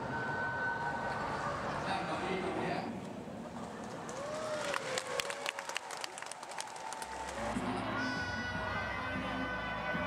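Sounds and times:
hand claps in a large hall: 3.6 - 7.7.

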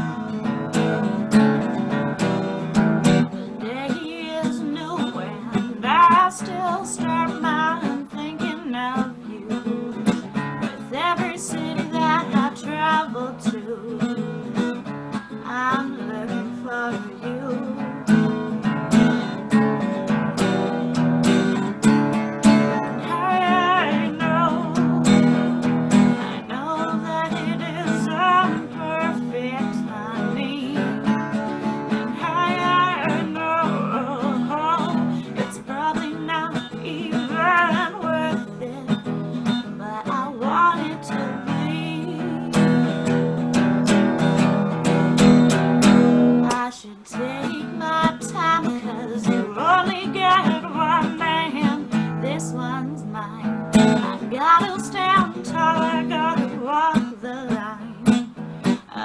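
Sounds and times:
woman singing: 0.0 - 44.5, 45.5 - 59.0
strummed acoustic guitar: 0.0 - 59.0.

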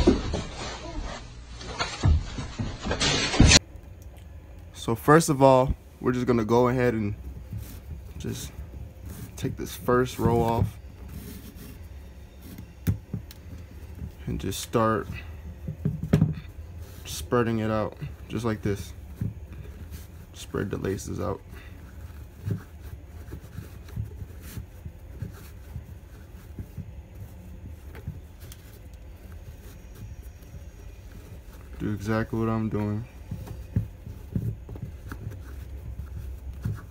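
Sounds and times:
low steady hum: 0.0 - 36.9
shoelaces rustling through eyelets: 3.6 - 36.9.

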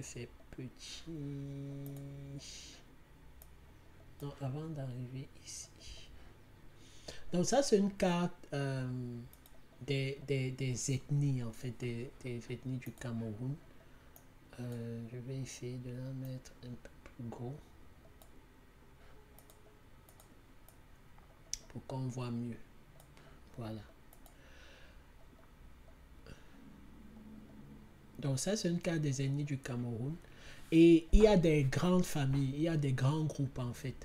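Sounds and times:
faint computer clicks: 1.7 - 2.4, 9.2 - 10.2, 12.6 - 13.2, 14.1 - 14.8, 19.3 - 21.8, 23.0 - 24.4.

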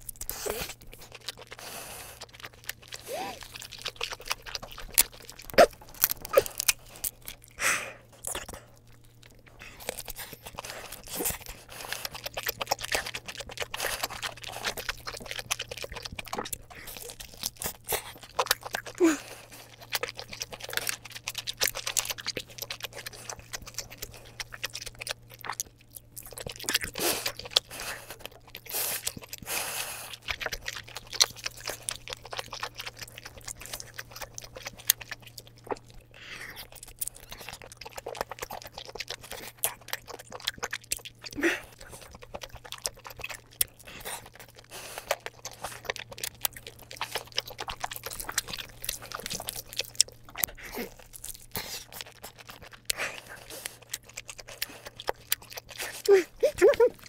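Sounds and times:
person chewing with crunches: 0.0 - 57.0.

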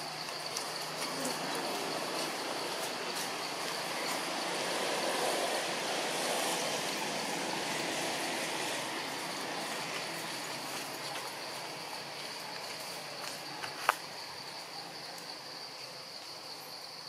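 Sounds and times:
outdoor rushing noise: 0.0 - 13.5
high insect drone: 0.0 - 17.0.

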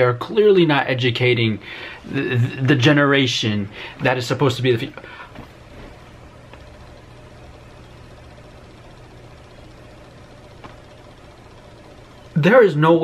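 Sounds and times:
low background hum with hiss: 0.0 - 13.0.

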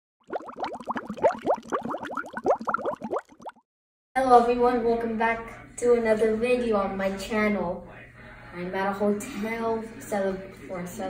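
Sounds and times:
bubbling water plops: 0.2 - 3.6.

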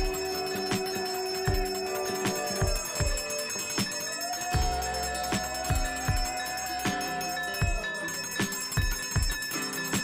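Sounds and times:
brass hand bell ringing: 0.0 - 10.0.

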